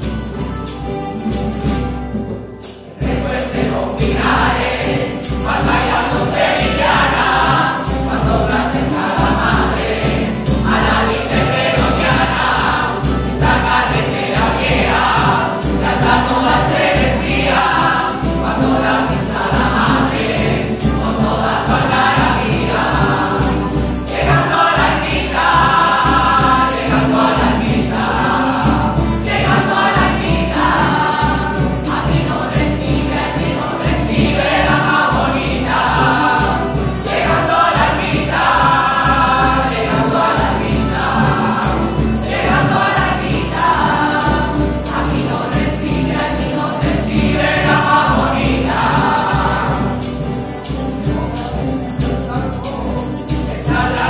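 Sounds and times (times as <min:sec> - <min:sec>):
strummed acoustic guitar: 0:00.0 - 0:54.0
mixed choir singing: 0:02.6 - 0:54.0.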